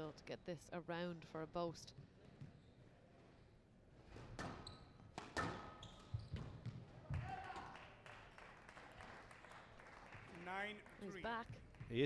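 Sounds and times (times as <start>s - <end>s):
shoes squeaking on court floor: 2.1s - 3.5s, 4.1s - 7.1s
squash ball hitting rackets and walls: 4.1s - 7.4s.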